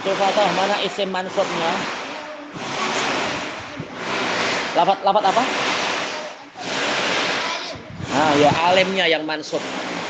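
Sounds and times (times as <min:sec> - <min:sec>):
faint voices: 0:00.0 - 0:10.0
steady rushing noise: 0:00.0 - 0:10.0.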